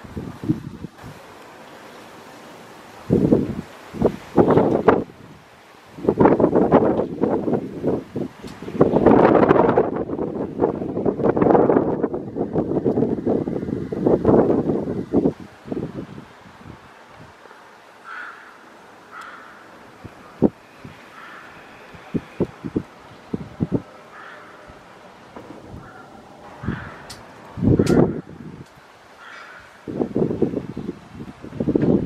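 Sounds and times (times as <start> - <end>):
gusty wind buffeting microphone: 0.0 - 1.4, 2.8 - 18.4, 19.1 - 32.0.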